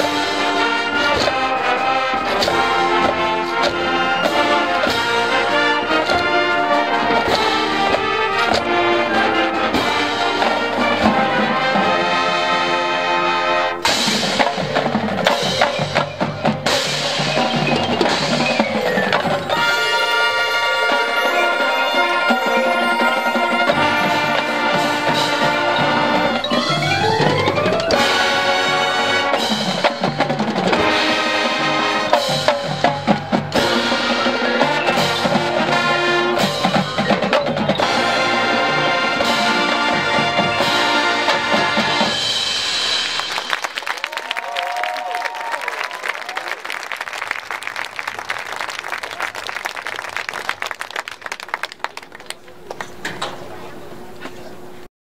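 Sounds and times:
snare and tenor drums: 0:00.0 - 0:43.8
marching band brass: 0:00.0 - 0:54.8
applause: 0:43.0 - 0:53.0
people cheering: 0:43.2 - 0:53.8.

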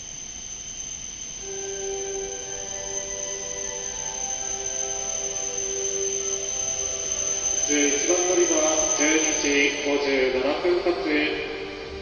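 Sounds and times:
faint hiss: 0:00.0 - 0:12.0
ringing tones in a chord: 0:00.0 - 0:12.0.

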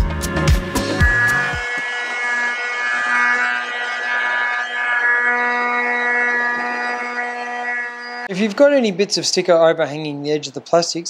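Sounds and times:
heat gun motor whine: 0:00.8 - 0:08.3.

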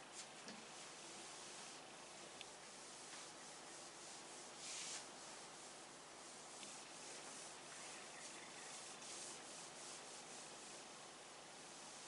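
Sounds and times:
marker scratching on whiteboard: 0:06.3 - 0:10.8.

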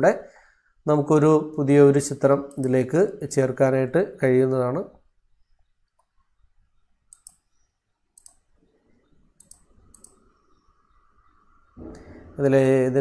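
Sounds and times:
computer mouse clicks: 0:02.4 - 0:02.8, 0:05.5 - 0:10.9.

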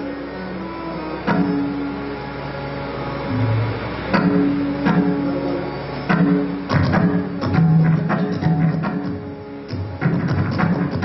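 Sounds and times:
harmonium reed notes: 0:00.0 - 0:11.0.

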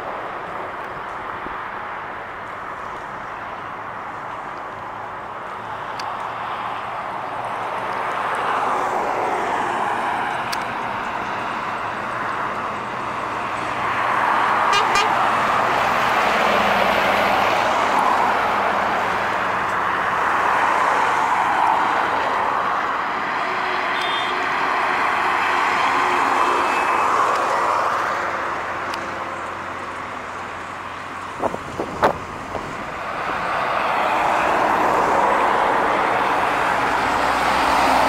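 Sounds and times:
trucks and traffic passing: 0:00.0 - 0:38.0.

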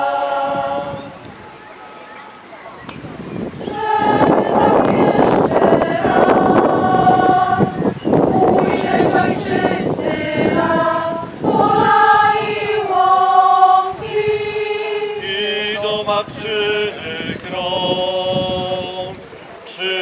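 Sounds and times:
women's choir singing: 0:00.0 - 0:01.3, 0:03.4 - 0:20.0.

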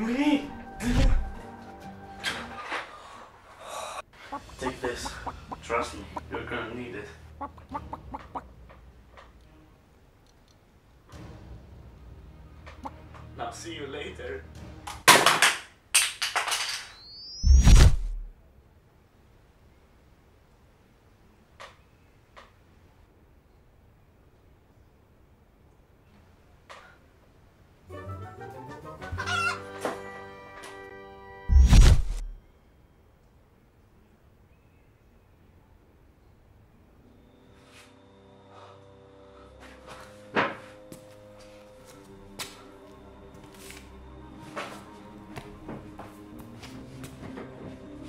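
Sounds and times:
music with long held notes: 0:00.0 - 0:02.8, 0:27.9 - 0:31.5, 0:37.0 - 0:48.0
hen clucking: 0:04.1 - 0:06.5, 0:07.2 - 0:08.6, 0:12.7 - 0:13.0, 0:29.0 - 0:29.8.

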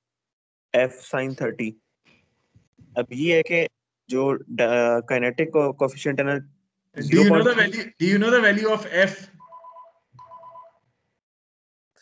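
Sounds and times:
telephone ringtone: 0:09.4 - 0:10.8.

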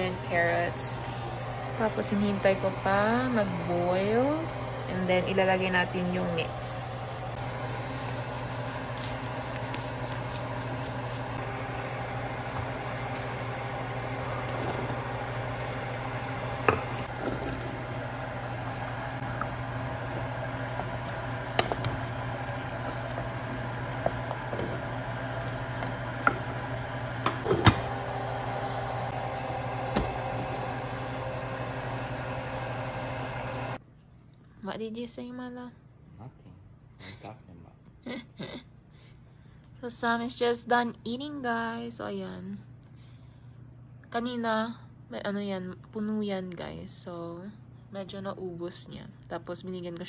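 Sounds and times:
low mechanical hum: 0:00.0 - 0:50.0.

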